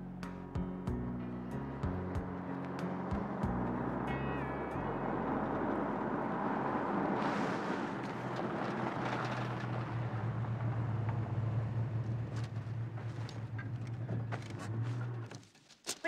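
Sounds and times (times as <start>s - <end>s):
car engine idling: 0.0s - 15.3s.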